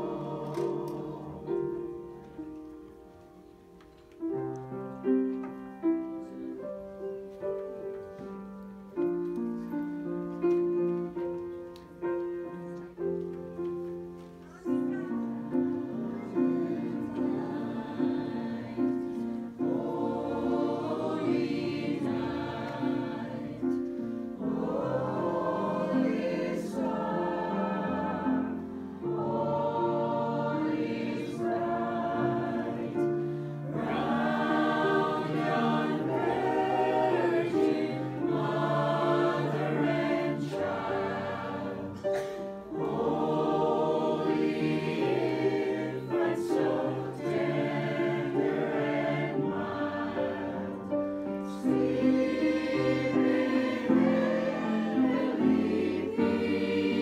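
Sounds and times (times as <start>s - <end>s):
mixed choir singing a carol: 0.0s - 2.9s, 9.0s - 57.0s.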